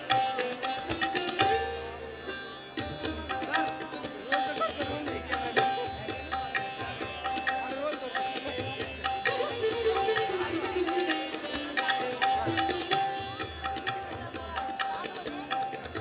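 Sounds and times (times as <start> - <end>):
plucked string instrument: 0.0 - 16.0.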